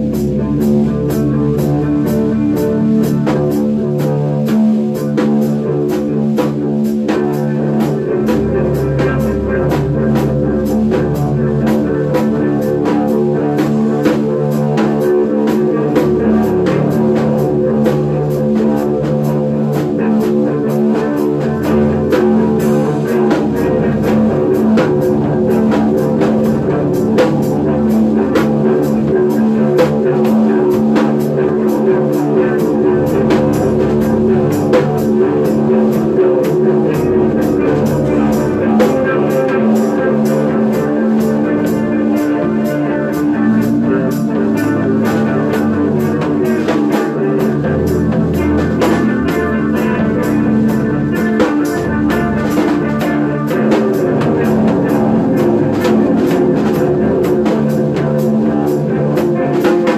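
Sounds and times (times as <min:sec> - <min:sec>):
rock band instrumental: 0:00.0 - 0:59.9.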